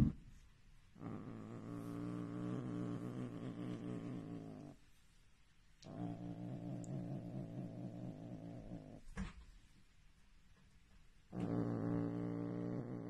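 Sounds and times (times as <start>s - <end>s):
cat purring rumble: 0.0s - 4.9s, 5.8s - 9.2s, 11.3s - 13.0s.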